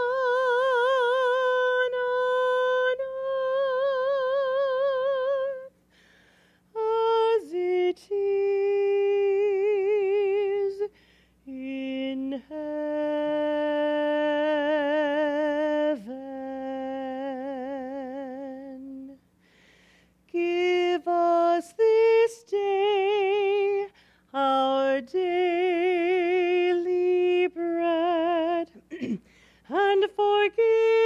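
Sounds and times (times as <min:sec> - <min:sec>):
woman singing unaccompanied: 0:00.0 - 0:05.8, 0:06.7 - 0:19.3, 0:20.3 - 0:31.0
singer breathing: 0:05.8 - 0:06.7, 0:10.9 - 0:11.4, 0:19.3 - 0:20.3, 0:23.9 - 0:24.3, 0:29.2 - 0:29.7.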